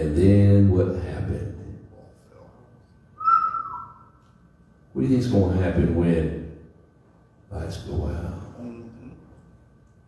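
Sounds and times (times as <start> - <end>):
person whistling: 3.2 - 4.1.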